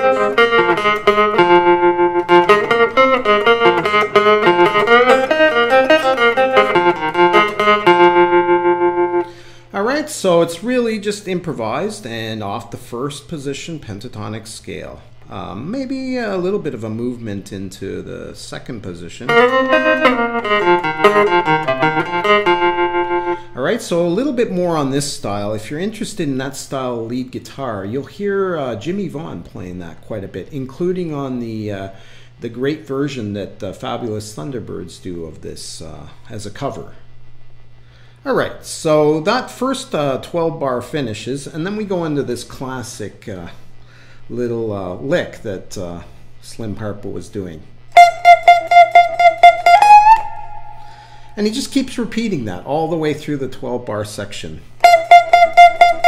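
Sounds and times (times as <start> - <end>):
electric guitar blues lick: 0.0 - 9.6, 19.3 - 23.6, 47.9 - 51.4, 54.8 - 56.0
man talking: 9.7 - 19.5, 23.5 - 37.0, 38.2 - 43.6, 44.3 - 47.7, 51.4 - 54.7.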